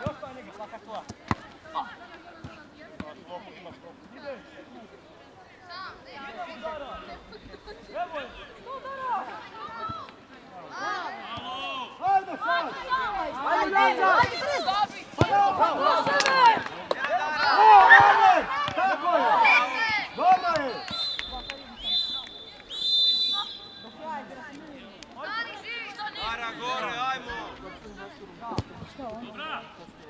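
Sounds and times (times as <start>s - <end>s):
players and coaches shouting: 10.6s - 24.3s.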